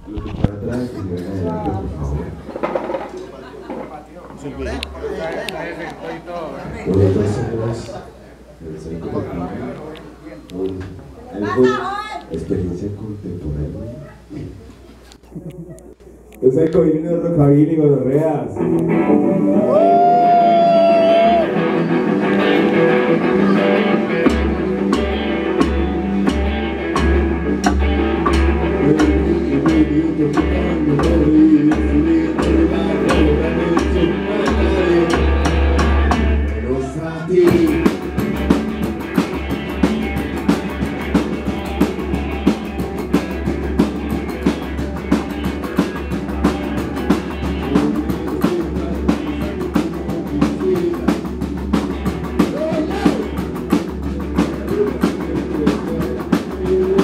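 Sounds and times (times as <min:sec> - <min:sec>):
electric guitar: 0:18.4 - 0:57.0
fast drum beat: 0:22.3 - 0:36.5, 0:37.5 - 0:57.0.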